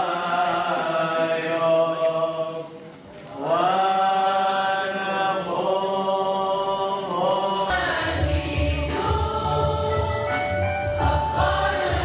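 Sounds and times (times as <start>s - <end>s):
liturgical chant: 0.0s - 12.0s.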